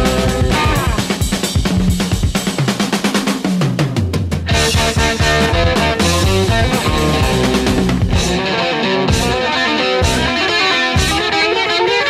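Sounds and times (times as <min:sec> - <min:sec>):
bass note sliding down: 0:00.0 - 0:01.0
drum-kit fill: 0:00.0 - 0:11.4
rock music: 0:00.0 - 0:12.0.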